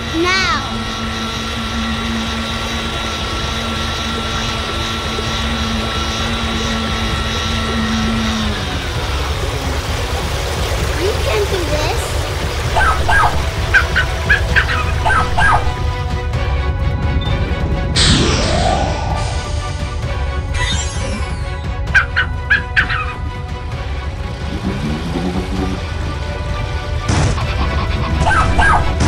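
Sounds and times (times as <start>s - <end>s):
boat motor droning: 0.0s - 29.0s
high voice-like calls: 12.7s - 15.8s, 21.9s - 23.2s.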